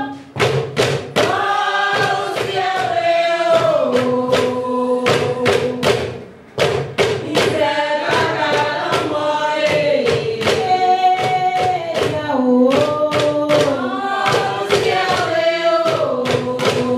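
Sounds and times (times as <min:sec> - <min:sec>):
women chanting in unison: 0:01.2 - 0:05.9, 0:07.2 - 0:16.9.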